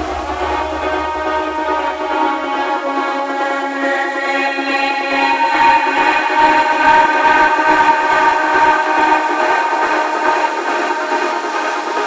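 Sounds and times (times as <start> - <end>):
layered synthesizer chord: 0.0 - 12.0.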